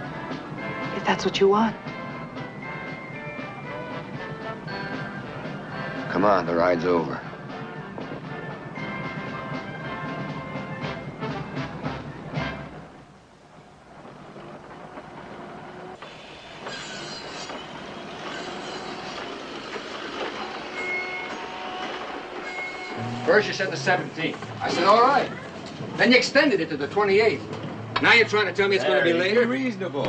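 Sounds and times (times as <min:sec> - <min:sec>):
steady building-site background: 0:00.0 - 0:28.6
music: 0:00.0 - 0:29.9
roofers tapping wooden shingles: 0:13.6 - 0:26.2.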